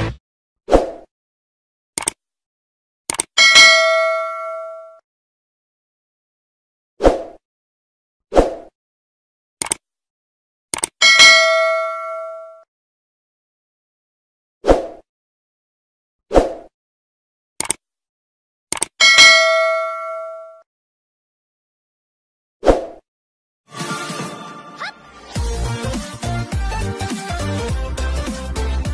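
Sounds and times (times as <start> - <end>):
bell ding: 3.4 - 5.0, 11.0 - 12.6, 19.0 - 20.6.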